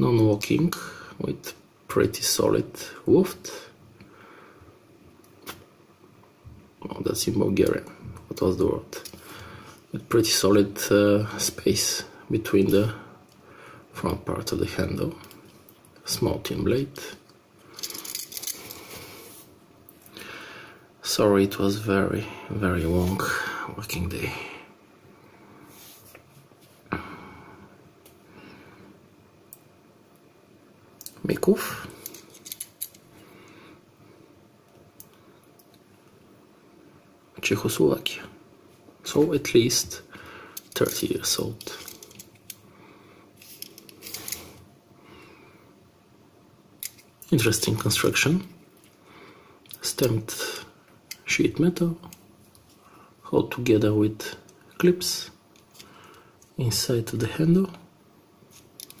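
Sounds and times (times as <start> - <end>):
pocket knife handling noise: 32.0 - 33.0
metallic scrapes and rustles: 43.4 - 44.6.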